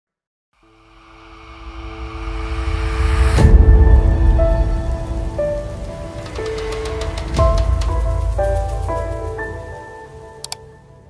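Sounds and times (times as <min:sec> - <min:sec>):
deep rumble: 0:01.3 - 0:09.7
hissing rain-like noise: 0:02.2 - 0:10.8.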